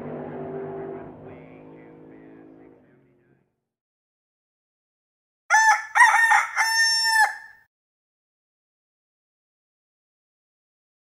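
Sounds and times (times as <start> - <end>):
rooster crowing: 5.5 - 7.6.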